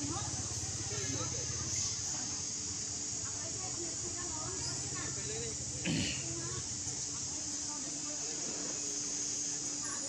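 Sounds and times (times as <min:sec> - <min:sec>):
faint voices: 0:00.0 - 0:10.0
steady high-pitched hiss: 0:00.0 - 0:10.0.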